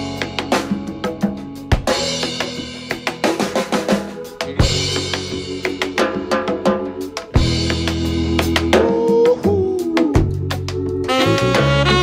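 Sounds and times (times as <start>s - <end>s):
drum kit: 0.0s - 12.0s.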